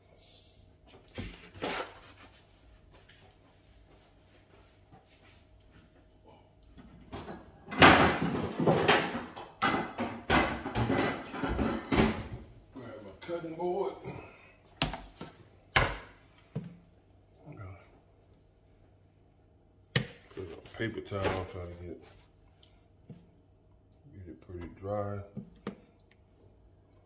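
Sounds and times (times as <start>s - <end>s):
kitchen knocks and clatters: 6.8s - 12.6s, 14.8s - 16.8s.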